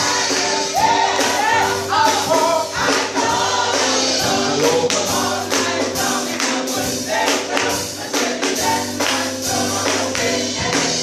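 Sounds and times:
gospel group singing: 0.0s - 11.0s
keyboard accompaniment: 0.0s - 11.0s
steady rhythmic beat: 0.0s - 11.0s.

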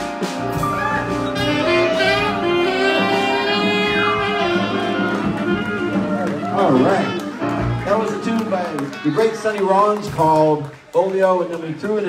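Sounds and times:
jazz band chord with saxophones: 0.0s - 9.7s
audience applause: 0.7s - 12.0s.

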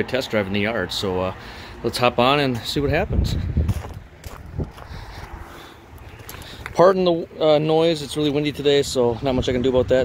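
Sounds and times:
wind buffeting microphone: 2.5s - 7.1s, 7.8s - 10.0s.

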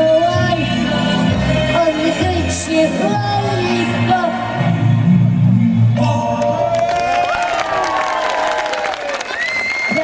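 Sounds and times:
audience applause and cheering: 6.3s - 10.0s.

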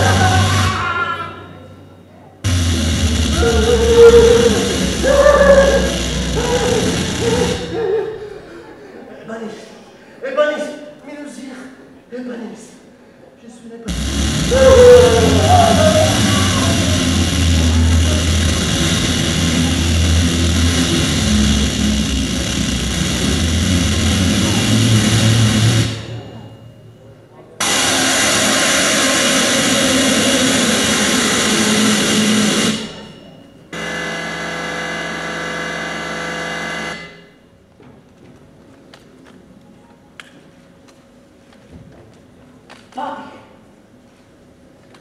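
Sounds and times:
drone of steady tones: 0.0s - 8.7s, 13.9s - 37.6s
dense roar with deep rumble: 2.5s - 7.8s, 13.9s - 26.4s.

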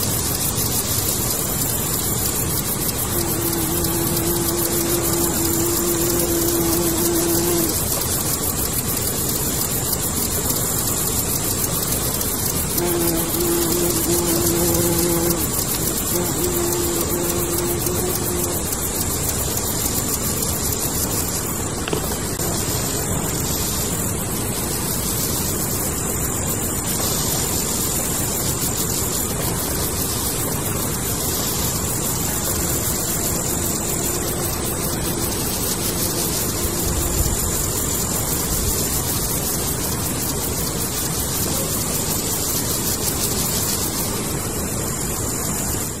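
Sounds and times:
grasshoppers stridulating: 0.0s - 46.0s.

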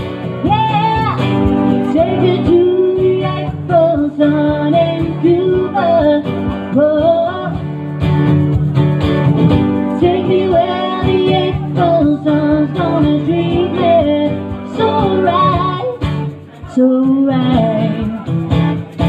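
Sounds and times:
acoustic guitar: 0.0s - 19.0s
sliding sung melody: 9.6s - 19.0s.

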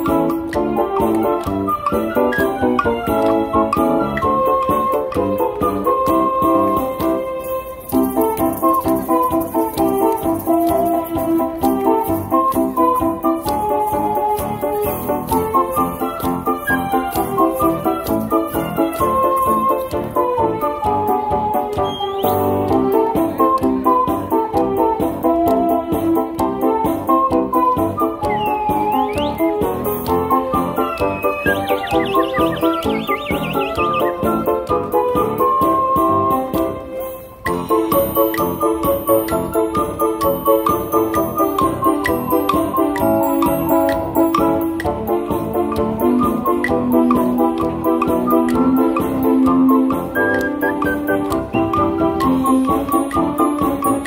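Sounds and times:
keyboard accompaniment with beat: 0.0s - 54.0s
ocarina melody: 0.0s - 54.0s
high warbling whistle-like tone: 30.8s - 34.4s.

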